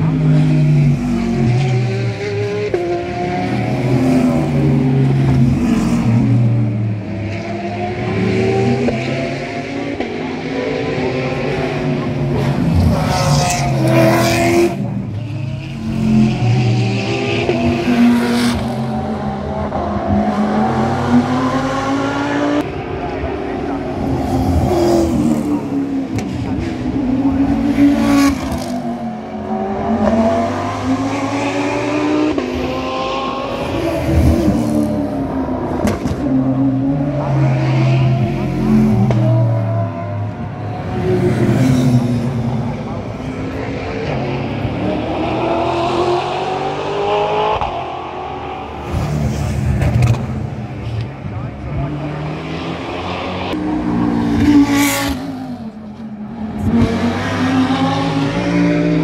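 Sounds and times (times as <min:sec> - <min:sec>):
racing car engines: 0:00.0 - 0:59.0.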